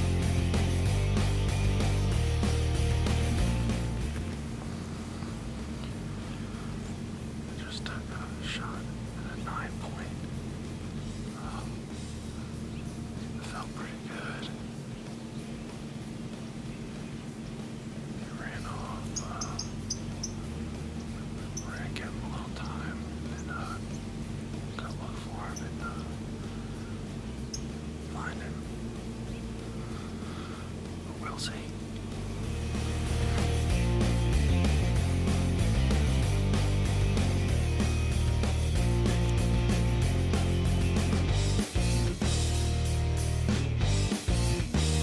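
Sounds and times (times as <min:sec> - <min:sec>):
steady low hum: 0:00.0 - 0:45.0
man whispering: 0:07.4 - 0:10.4, 0:11.2 - 0:12.6, 0:13.2 - 0:14.7, 0:18.2 - 0:19.8, 0:21.2 - 0:24.0, 0:24.7 - 0:26.5, 0:28.0 - 0:28.8, 0:30.6 - 0:32.0.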